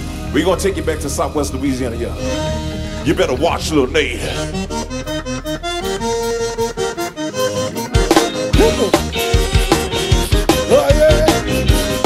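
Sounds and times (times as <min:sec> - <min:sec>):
steady low bass: 0:00.0 - 0:12.0
button accordion playing: 0:04.1 - 0:12.0.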